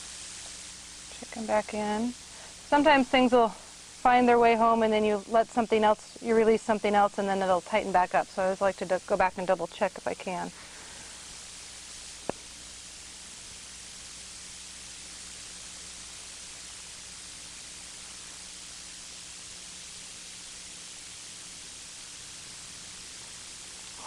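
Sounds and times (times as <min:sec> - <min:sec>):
faint low hum: 0:00.0 - 0:24.0
steady background hiss: 0:00.0 - 0:24.0.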